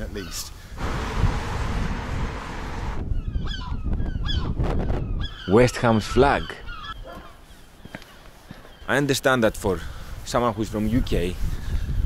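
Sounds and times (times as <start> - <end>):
rushing noise: 0.8 - 3.1
bird calls: 3.0 - 10.0.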